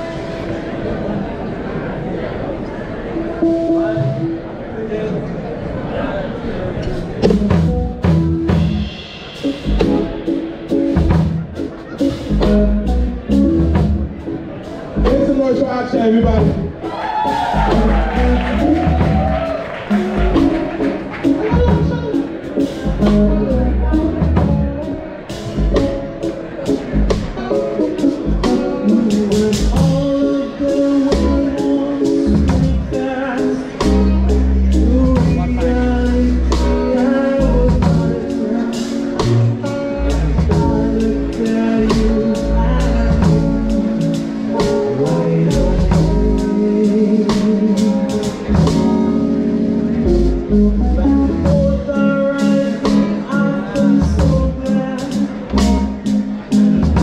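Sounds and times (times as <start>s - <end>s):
guitar: 0.0s - 4.9s, 6.7s - 57.0s
heavy bass line: 7.0s - 57.0s
drum kit beat: 7.2s - 57.0s.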